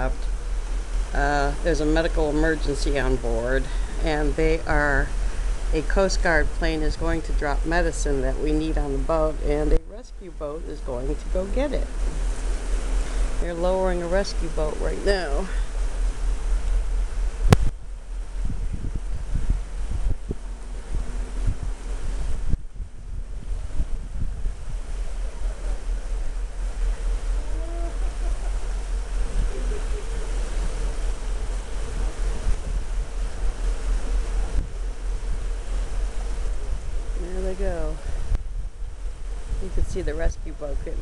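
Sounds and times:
wind blowing over microphone: 0.0s - 41.0s
faint voices: 27.1s - 31.0s.

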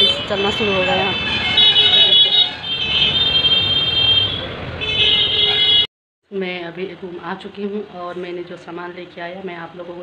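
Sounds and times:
high-pitched vehicle horns: 0.0s - 5.9s
busy road traffic: 0.0s - 10.0s.

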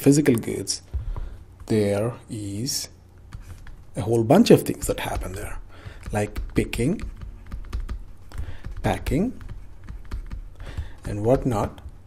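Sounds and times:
person speaking: 0.0s - 10.0s, 10.7s - 12.0s
low steady hum: 0.0s - 12.0s
stylus tapping on tablet: 4.7s - 11.9s.

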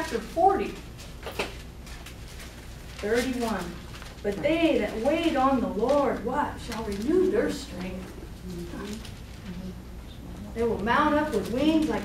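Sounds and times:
room noise hum: 0.0s - 12.0s.

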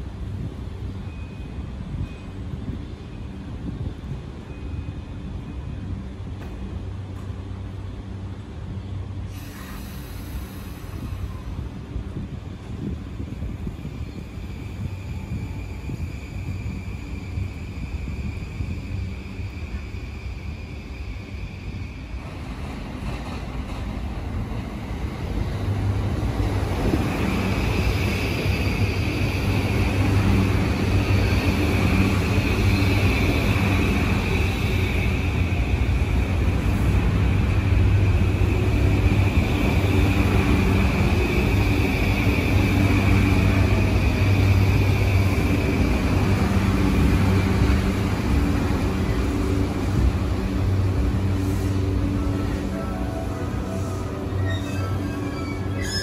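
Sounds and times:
electric train pulling in: 0.0s - 56.0s.

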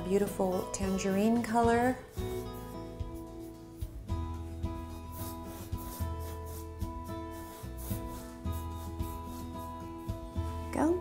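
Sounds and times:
paintbrush scratching on canvas: 0.0s - 10.7s
soft music of held chords: 0.0s - 11.0s.

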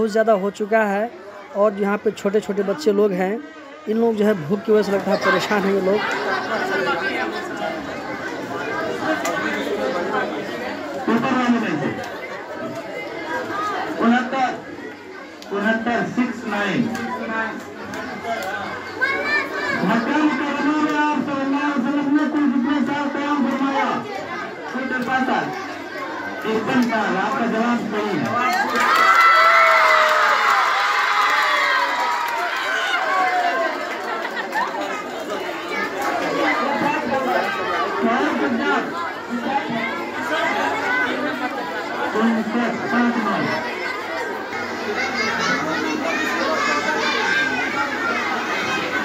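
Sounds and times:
children chattering: 0.0s - 49.0s
high child's voice: 18.8s - 19.8s.

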